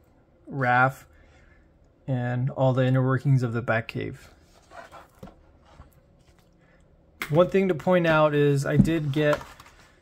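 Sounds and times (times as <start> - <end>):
book pages flipping: 8.9 - 10.0.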